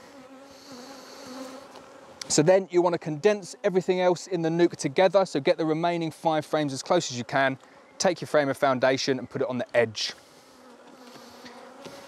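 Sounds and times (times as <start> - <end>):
honeybees buzzing: 0.0 - 12.0.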